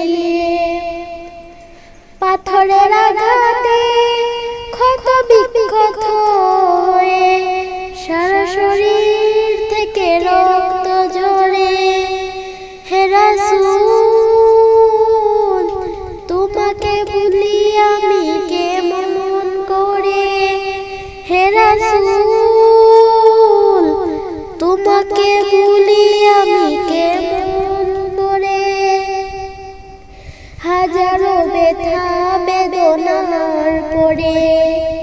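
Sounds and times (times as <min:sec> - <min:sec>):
woman singing in high voice: 0:00.0 - 0:35.0.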